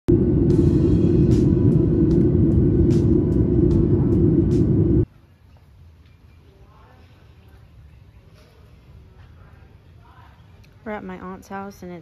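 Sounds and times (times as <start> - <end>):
jet engine and airflow rumble: 0.0 - 5.1.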